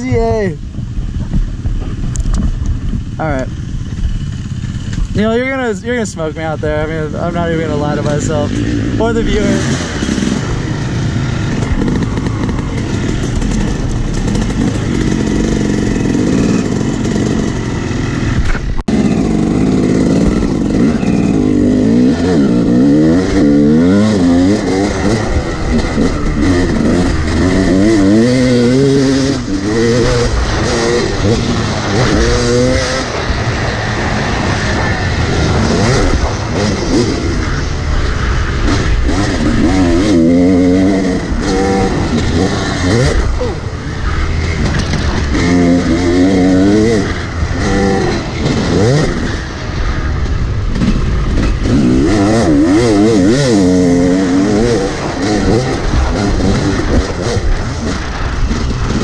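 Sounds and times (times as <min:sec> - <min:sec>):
dirt bike engine revving: 0:00.8 - 0:59.0.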